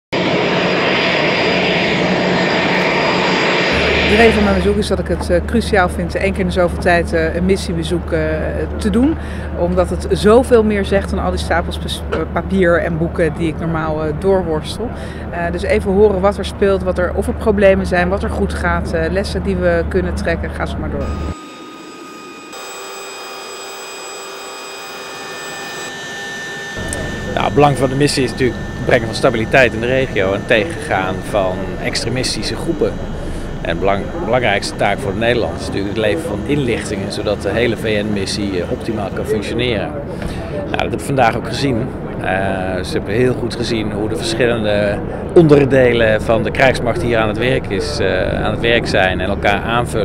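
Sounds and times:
jet engines running: 0.1s - 12.5s, 18.6s - 50.0s
low hum: 0.1s - 50.0s.

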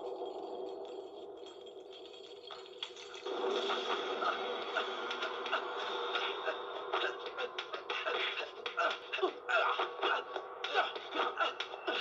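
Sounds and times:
droning movie soundtrack: 0.0s - 12.0s.

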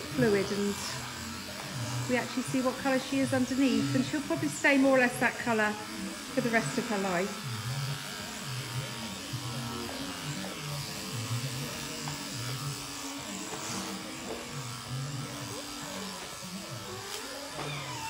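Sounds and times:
electric shears buzzing: 0.0s - 18.0s.

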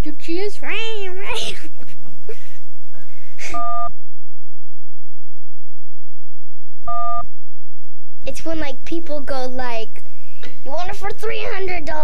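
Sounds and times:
child talking: 0.0s - 1.7s, 8.3s - 10.0s, 10.6s - 12.0s
child giggling: 0.8s - 2.6s.

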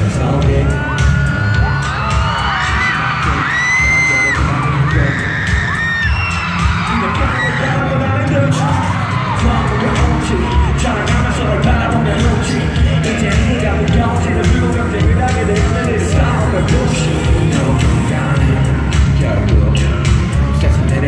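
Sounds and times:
audience screaming and cheering: 0.0s - 21.0s
loud pop music with heavy beat: 0.0s - 21.0s.

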